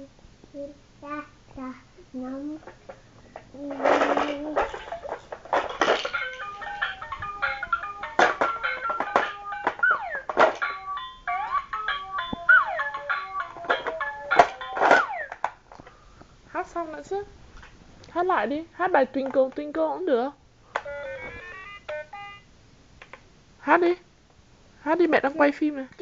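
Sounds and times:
electronic toy beeping tune: 6.2 - 15.4, 20.8 - 22.5.

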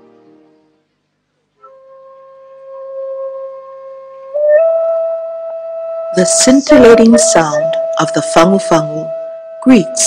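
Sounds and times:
nose flute long note: 1.6 - 10.0.

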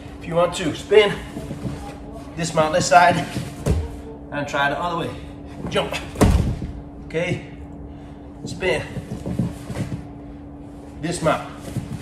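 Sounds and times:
body scuffing on a mat: 1.0 - 4.0, 8.4 - 10.1, 10.7 - 12.0.

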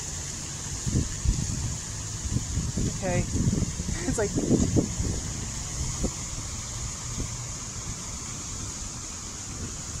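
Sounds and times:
fountain water rushing: 0.0 - 10.0
wind rumble on microphone: 0.0 - 10.0.

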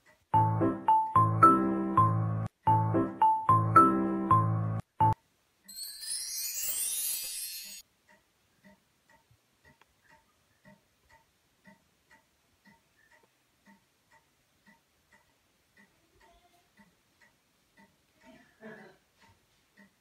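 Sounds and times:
clock ticking: 0.0 - 5.8, 7.8 - 20.0.

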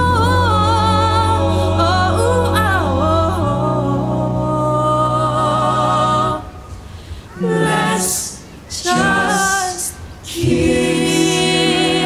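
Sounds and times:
a cappella group singing: 0.0 - 12.0.

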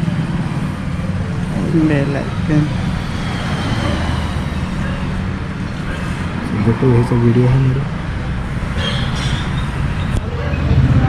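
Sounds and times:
low motor hum: 0.0 - 8.8
continuous noisy rush: 0.0 - 11.0.

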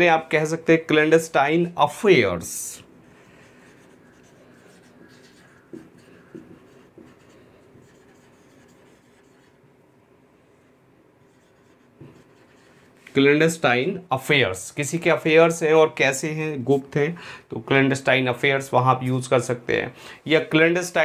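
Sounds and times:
marker writing on whiteboard: 3.1 - 9.6, 11.2 - 13.6.

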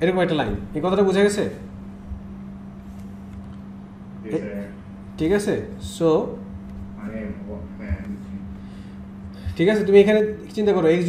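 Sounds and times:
steady low hum: 0.0 - 11.0
faint rumble: 5.8 - 10.2.

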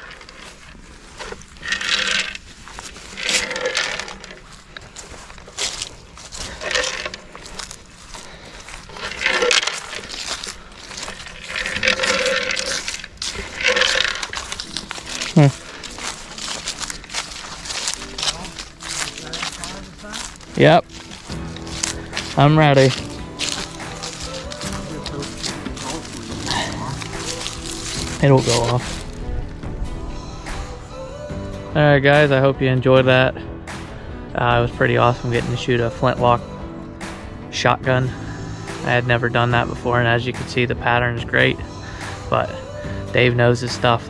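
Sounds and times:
pellets rattling in plastic can: 1.2 - 4.6, 5.6 - 29.2.

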